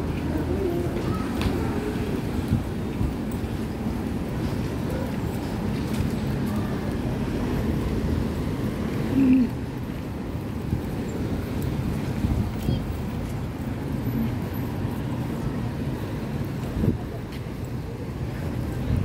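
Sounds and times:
wind on microphone: 0:00.0 - 0:09.2, 0:10.5 - 0:17.3
faint voices of passers-by: 0:00.0 - 0:19.0
traffic rumble: 0:00.0 - 0:19.0.

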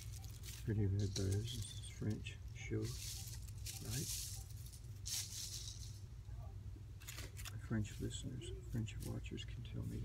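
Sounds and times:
steady low hum: 0:00.0 - 0:10.0
plastic ribbon rustling: 0:02.8 - 0:06.1.

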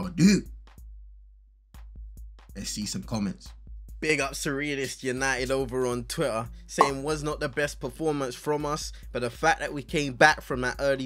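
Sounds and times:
background music: 0:01.8 - 0:11.0
man speaking: 0:06.7 - 0:07.6.

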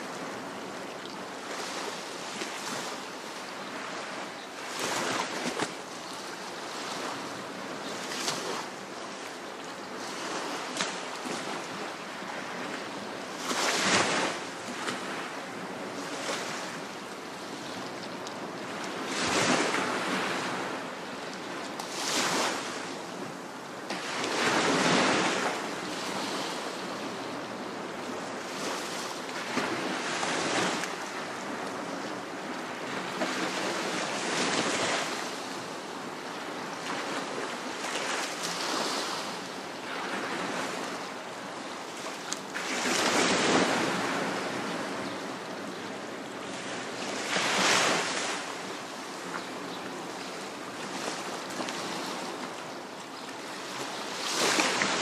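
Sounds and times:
steady surf wash: 0:00.0 - 0:55.0
waves washing onto beach: 0:00.0 - 0:55.0.

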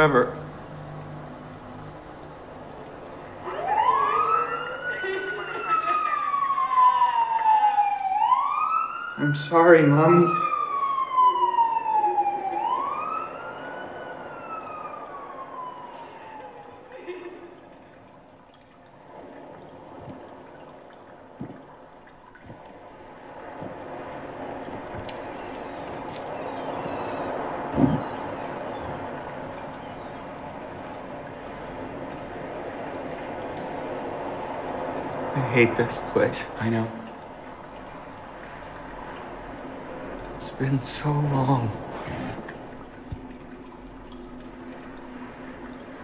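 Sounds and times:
emergency siren wailing: 0:00.0 - 0:21.7, 0:22.4 - 0:40.3
soft steady background hiss: 0:16.9 - 0:46.0.

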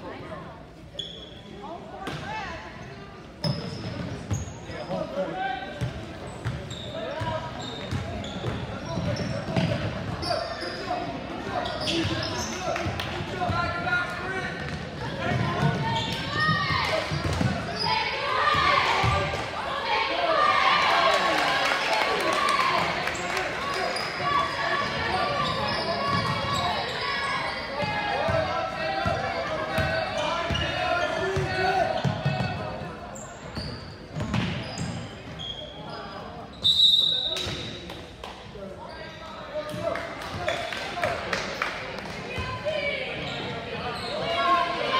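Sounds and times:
voices echoing: 0:00.0 - 0:44.9
sneakers squeaking: 0:00.9 - 0:02.2, 0:02.8 - 0:12.9, 0:13.5 - 0:19.3, 0:23.2 - 0:37.9, 0:42.3 - 0:44.9.

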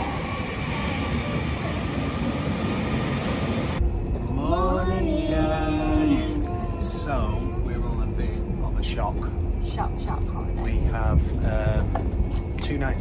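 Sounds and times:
train rumble with whining: 0:00.0 - 0:13.0.

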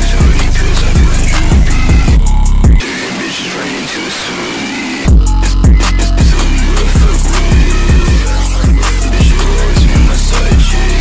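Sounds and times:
gritty electronic noise texture: 0:00.0 - 0:11.0.

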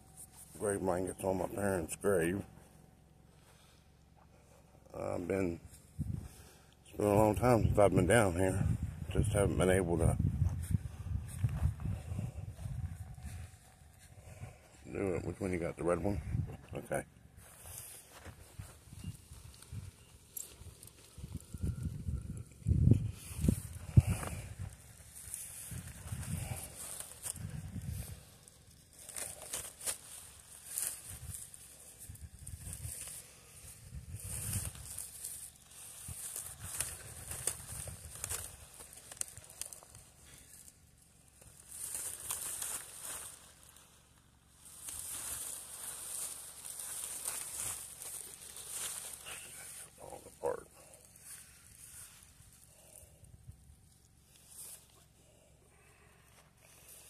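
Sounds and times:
plastic wrapping crinkling: 0:34.3 - 0:50.0.

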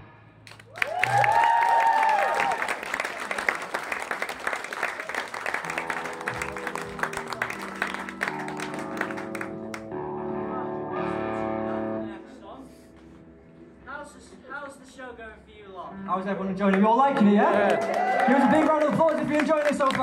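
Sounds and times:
audience applause and cheering: 0:00.5 - 0:09.9, 0:17.2 - 0:20.0
electric guitar and bass notes: 0:05.5 - 0:13.9.

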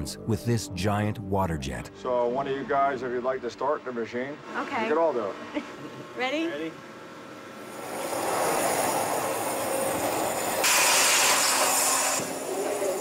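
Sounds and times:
water jet cutter hissing: 0:07.6 - 0:13.0.

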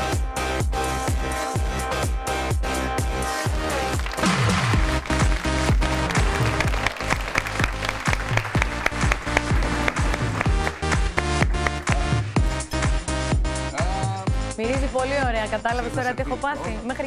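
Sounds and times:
upbeat music with steady beat: 0:00.0 - 0:17.0
audience applauding: 0:03.5 - 0:12.4.

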